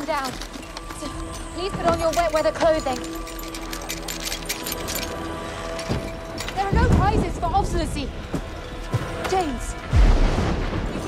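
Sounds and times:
sharp clicks and rattles: 0.0 - 8.5.

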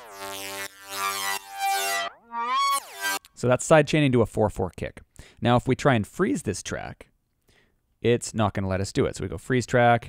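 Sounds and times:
synth lead with pumping effect: 0.0 - 3.3.

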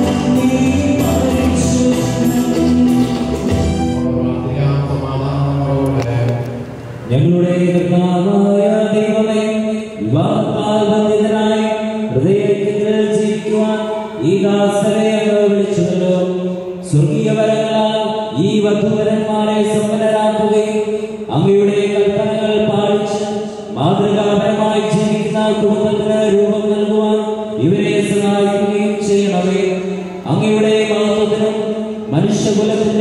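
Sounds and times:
man chanting through a microphone: 4.0 - 33.0.

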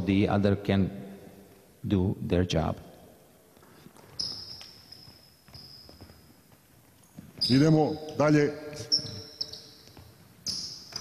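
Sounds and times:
basketball shoes squeaking on wood: 3.9 - 8.2, 8.8 - 11.0
ball bouncing: 9.4 - 11.0.

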